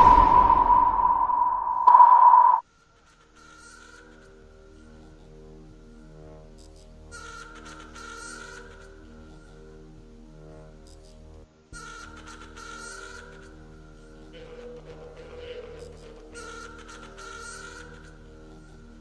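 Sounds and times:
loud steady high tone: 0.0 - 2.6.

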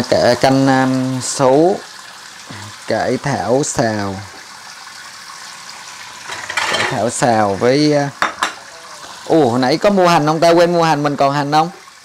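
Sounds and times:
tap running into a sink: 6.2 - 9.2.

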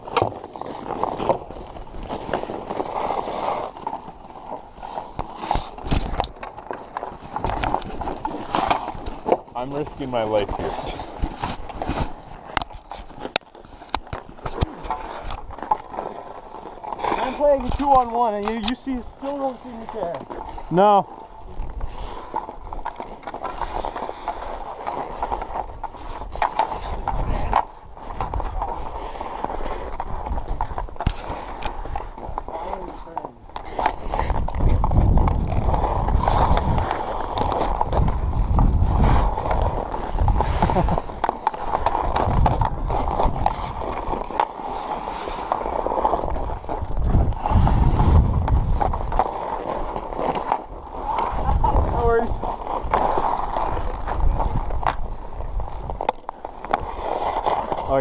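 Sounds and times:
skates scraping on ice: 0.0 - 58.0
wind rumble on microphone: 25.4 - 32.5, 33.5 - 44.2, 45.7 - 58.0.

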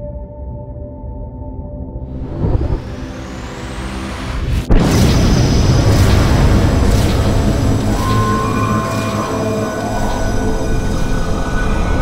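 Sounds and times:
explosion-like boom: 2.1 - 12.0
low rumble: 2.1 - 12.0
rising whoosh: 2.1 - 12.0.

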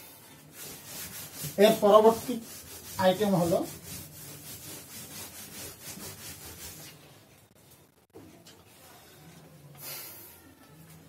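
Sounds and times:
eraser rubbing on chalkboard: 0.3 - 7.0.

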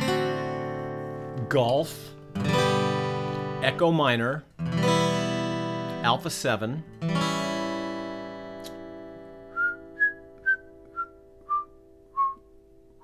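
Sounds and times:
acoustic guitar chord strum: 0.0 - 13.0
man whistling: 9.5 - 12.6.

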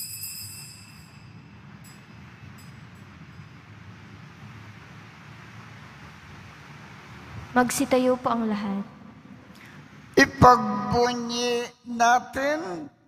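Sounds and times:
hand bells ringing: 0.0 - 3.5
low room hum: 0.0 - 13.0.

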